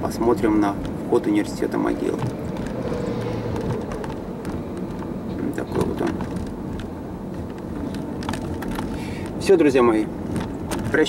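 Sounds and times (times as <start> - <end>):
bus passing: 0.0 - 8.2
car engine hum: 0.0 - 11.0
road noise: 0.0 - 11.0.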